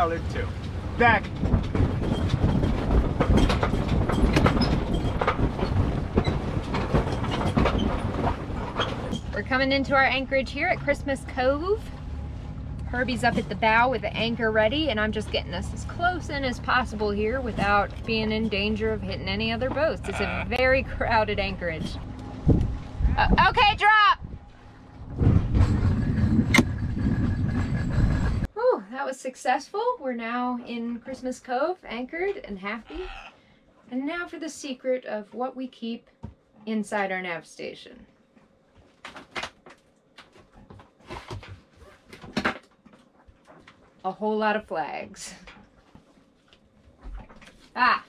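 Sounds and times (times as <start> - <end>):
wind: 0.0 - 29.1, 29.7 - 34.3
rattling knocks and clatter: 0.5 - 20.0, 24.9 - 28.5
anchor chain rattling: 0.6 - 10.7.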